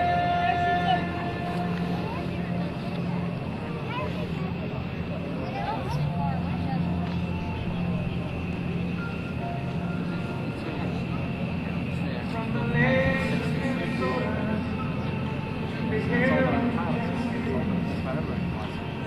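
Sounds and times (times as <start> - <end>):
faint distant voices: 0.0 - 19.0
low engine drone: 0.0 - 19.0.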